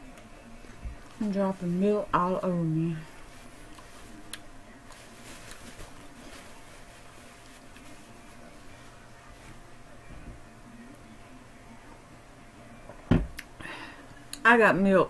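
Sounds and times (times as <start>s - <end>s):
faint steady hum: 0.0s - 15.0s
paper napkin rustling: 1.0s - 9.8s.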